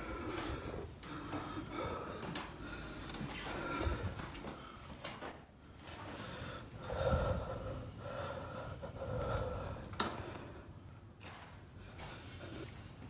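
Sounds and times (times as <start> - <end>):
heavy breathing: 0.0 - 11.1.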